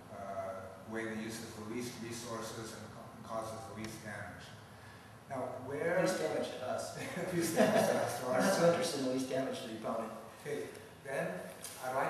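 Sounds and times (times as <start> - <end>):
man talking: 0.0 - 4.5, 5.3 - 12.0.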